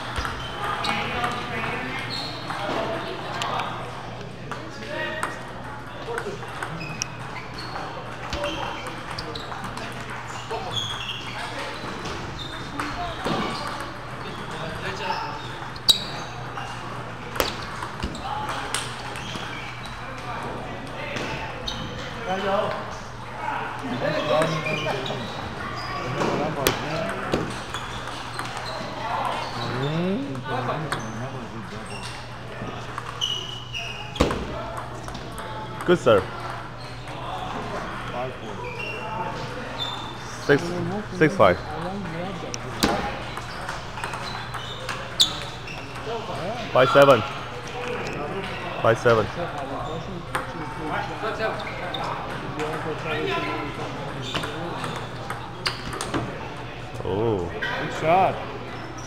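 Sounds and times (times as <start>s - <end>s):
background chatter of voices: 0.0s - 59.0s.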